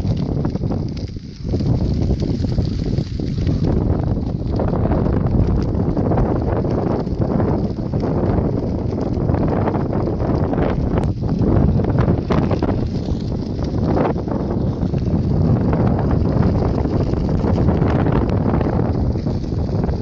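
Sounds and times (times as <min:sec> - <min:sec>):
faint crackles: 0:00.0 - 0:20.0
wind buffeting microphone: 0:00.0 - 0:20.0.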